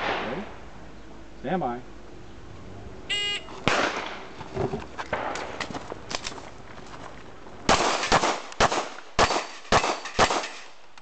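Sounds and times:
gunshot: 0:00.0 - 0:00.5, 0:03.6 - 0:04.2, 0:07.7 - 0:10.7.

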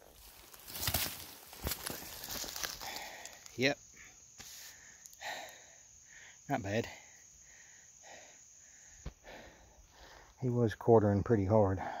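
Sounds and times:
faint breathing: 0:01.9 - 0:10.4, 0:11.8 - 0:12.0.

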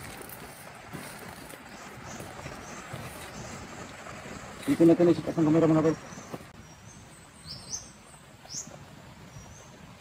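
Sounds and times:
small bird chirping: 0:04.6 - 0:09.8.

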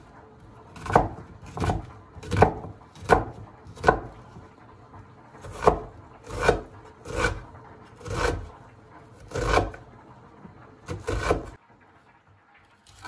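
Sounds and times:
knife slicing onion on cutting board: 0:00.4 - 0:04.5, 0:05.4 - 0:09.8, 0:10.9 - 0:11.6.

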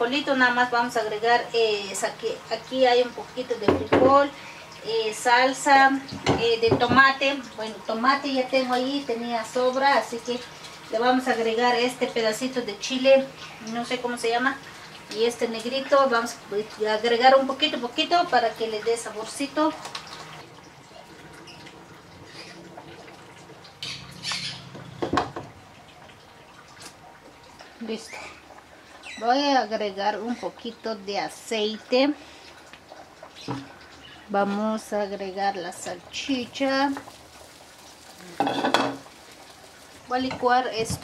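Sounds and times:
cookware clattering: 0:38.4 - 0:39.1.

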